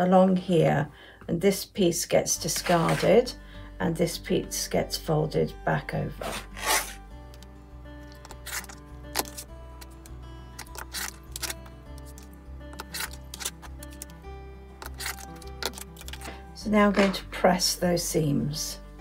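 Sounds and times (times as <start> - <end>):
background music with held notes: 0.0 - 19.0.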